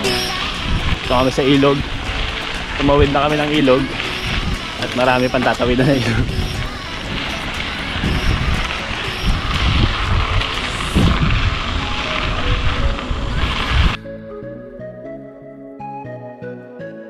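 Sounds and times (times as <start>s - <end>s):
wind rumble on microphone: 0.0s - 14.0s
background music: 0.0s - 17.0s.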